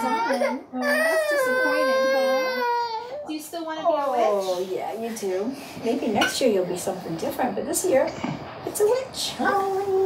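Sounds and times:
toddler crying: 0.0s - 3.4s.

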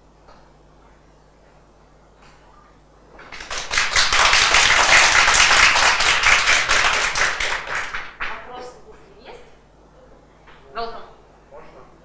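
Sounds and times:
audience applauding: 3.2s - 8.4s.

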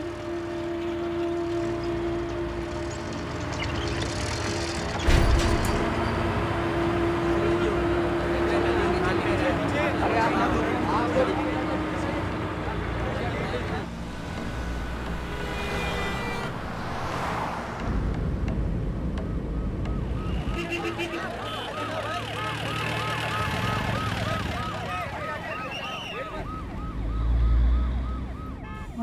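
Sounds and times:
vehicle engines rumbling: 0.0s - 29.0s
warbling siren: 19.3s - 29.0s.

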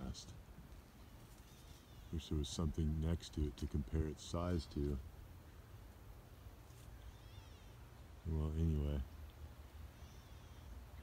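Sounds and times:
distant bird call: 0.9s - 2.4s, 6.8s - 11.0s.

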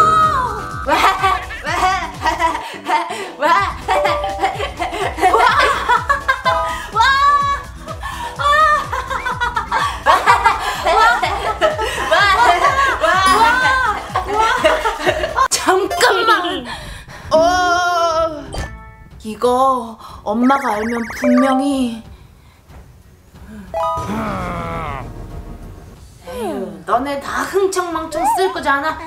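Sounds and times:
background music with beat: 3.7s - 15.0s, 20.5s - 22.0s
bright rising chime: 20.5s - 22.0s.

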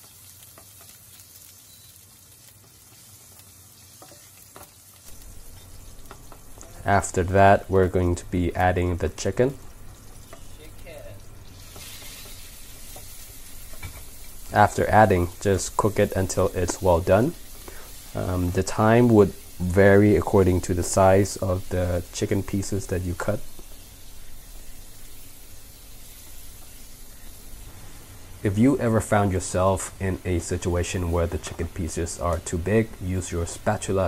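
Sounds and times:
chicken sizzling in hot oil: 0.0s - 34.0s.

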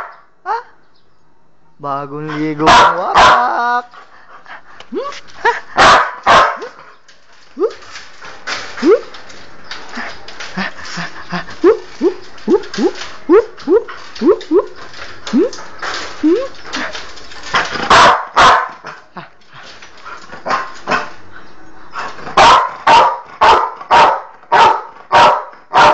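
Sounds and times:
dog barking: 2.6s - 3.6s, 5.8s - 6.7s, 17.9s - 18.8s, 22.4s - 25.9s
dog yelping: 17.9s - 18.8s, 22.4s - 25.9s.

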